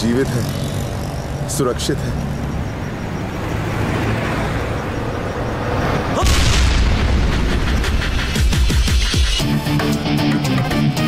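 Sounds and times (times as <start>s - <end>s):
large explosion boom: 6.2s - 8.3s.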